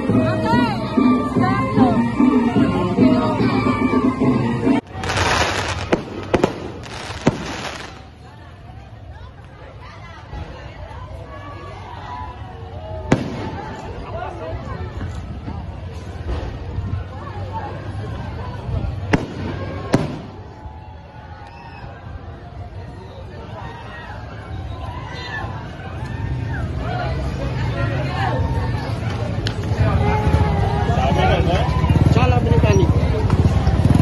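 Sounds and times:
fireworks crackling: 0:04.8 - 0:08.4
fireworks bangs: 0:04.9 - 0:08.1, 0:13.1 - 0:13.9, 0:19.1 - 0:20.4.

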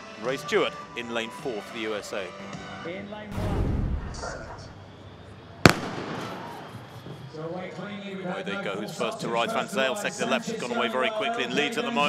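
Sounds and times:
starting gun crack: 0:05.7 - 0:06.7.

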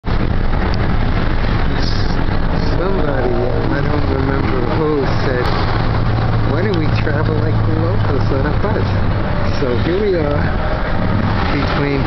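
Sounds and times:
bus engine and road rumble: 0:00.0 - 0:12.0
people talking: 0:01.7 - 0:05.6, 0:06.4 - 0:10.6, 0:11.4 - 0:12.0.

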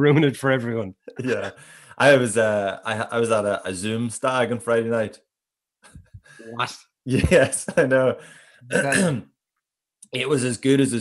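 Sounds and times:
man speaking: 0:00.0 - 0:05.2, 0:06.3 - 0:09.3, 0:10.2 - 0:11.0
man clearing throat: 0:08.7 - 0:09.3.

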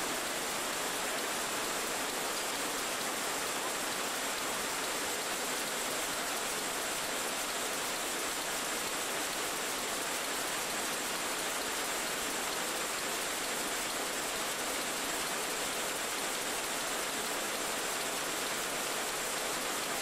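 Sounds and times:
recording hiss: 0:00.0 - 0:20.0.

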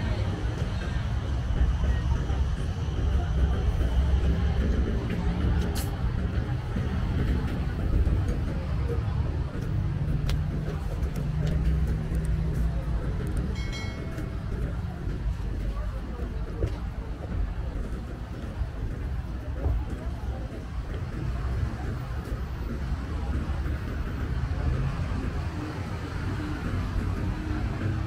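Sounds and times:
motor traffic passing: 0:00.0 - 0:28.0
people's voices: 0:00.0 - 0:28.0.

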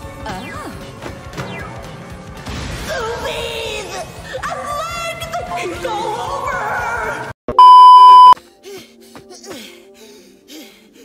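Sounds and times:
electronic censor bleep: 0:07.5 - 0:08.4.

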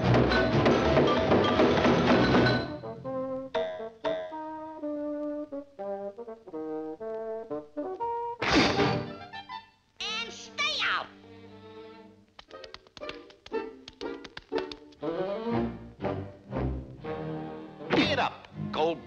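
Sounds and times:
orchestral cartoon music with brass: 0:00.0 - 0:09.7, 0:15.0 - 0:19.0.

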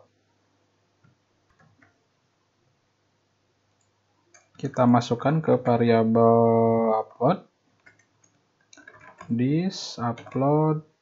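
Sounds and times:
computer keyboard clicks: 0:07.8 - 0:09.3, 0:10.2 - 0:10.4.

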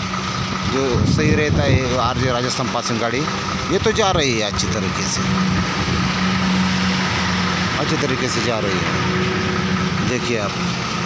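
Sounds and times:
diesel truck engine under load: 0:00.0 - 0:11.0
tyre and road noise: 0:00.0 - 0:11.0.

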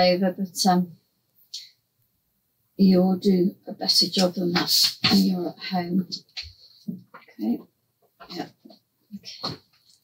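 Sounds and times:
woman speaking: 0:00.0 - 0:01.7, 0:02.8 - 0:07.6, 0:08.2 - 0:09.6.

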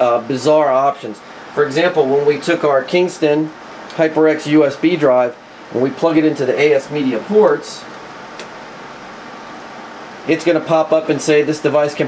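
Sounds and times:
fan-like background noise: 0:00.0 - 0:12.0.

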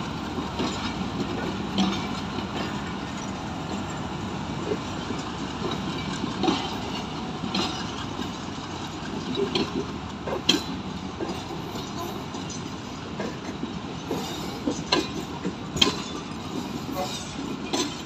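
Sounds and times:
train clicks and clanks: 0:00.0 - 0:18.0
train wheels rumbling on track: 0:00.0 - 0:18.0.

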